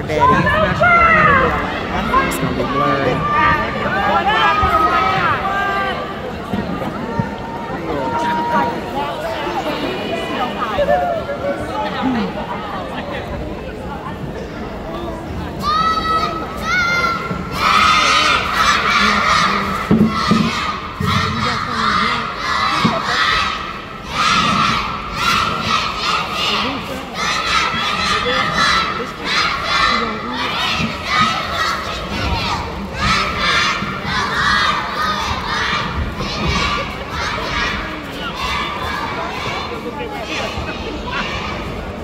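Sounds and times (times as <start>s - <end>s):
girls chanting a cheer in unison: 15.6s - 42.0s.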